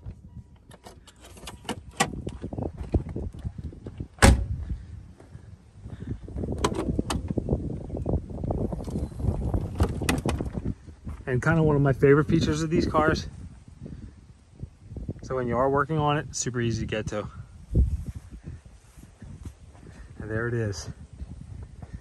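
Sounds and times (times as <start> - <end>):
car hood latch clicks: 6.6 - 7.3.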